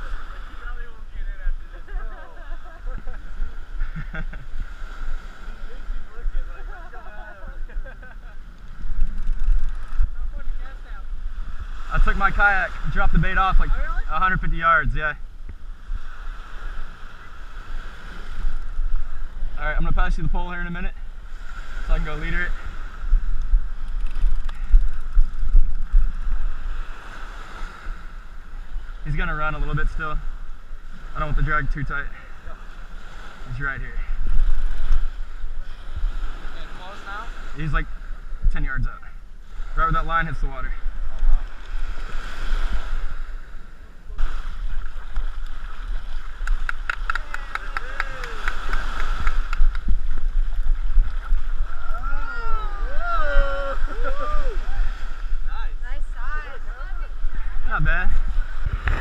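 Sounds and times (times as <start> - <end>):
wind buffeting microphone: 0.0 - 32.0, 32.8 - 39.8, 40.6 - 59.0
small waves breaking: 0.0 - 59.0
surf washing at shoreline: 0.0 - 59.0.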